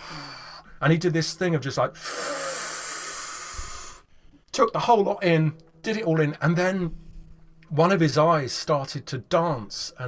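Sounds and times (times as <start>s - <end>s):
man breathing in deeply: 0.0s - 0.8s, 2.0s - 4.4s.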